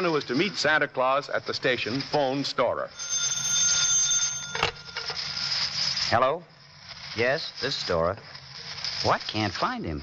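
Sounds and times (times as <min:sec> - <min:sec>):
telephone bell ringing: 0:03.0 - 0:06.0.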